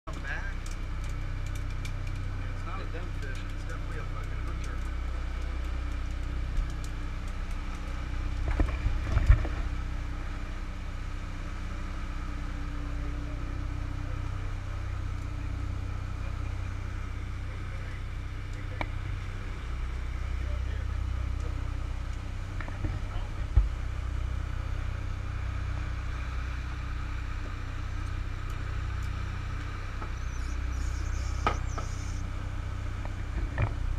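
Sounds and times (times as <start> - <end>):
boat engines droning: 0.1 - 33.9.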